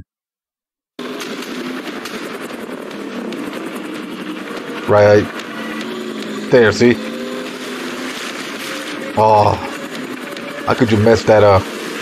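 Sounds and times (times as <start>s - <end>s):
rapid automatic gunfire: 1.0s - 12.0s
vehicle running: 1.0s - 12.0s.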